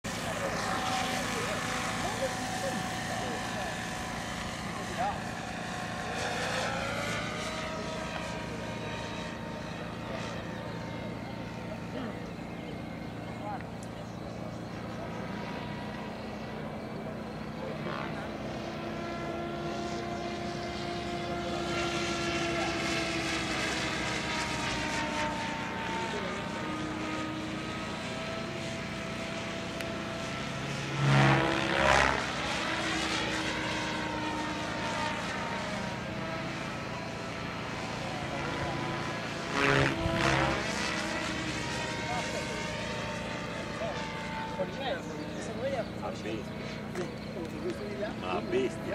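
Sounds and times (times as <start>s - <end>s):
model helicopter motor whine: 0.0s - 48.9s.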